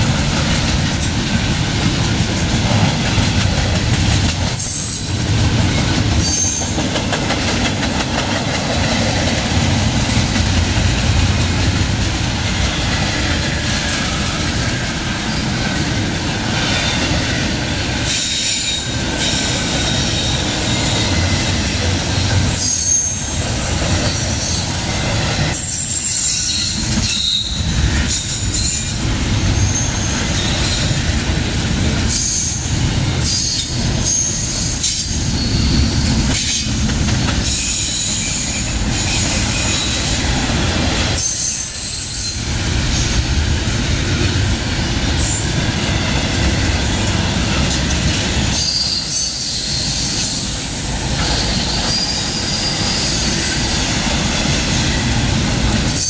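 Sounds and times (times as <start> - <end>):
train wheels rumbling on rail: 0.0 - 56.0
wheel squeal: 33.2 - 36.6, 48.5 - 53.4.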